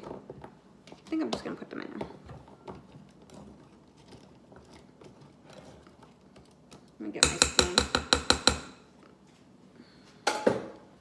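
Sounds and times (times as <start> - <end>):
utensil knocking on counter: 7.2 - 8.7.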